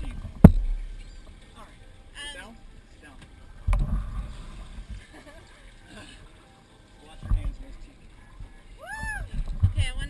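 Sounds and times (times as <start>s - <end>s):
dull low thump: 3.6s - 5.0s.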